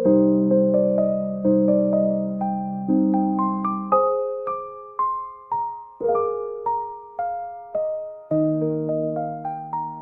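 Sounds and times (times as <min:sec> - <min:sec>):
slow soft piano melody: 0:00.0 - 0:10.0.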